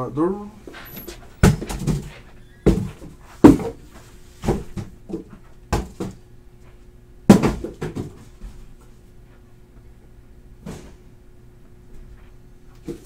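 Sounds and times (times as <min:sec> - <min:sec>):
cardboard boxes thudding on table: 0:01.4 - 0:03.8, 0:04.4 - 0:06.2, 0:07.3 - 0:08.3.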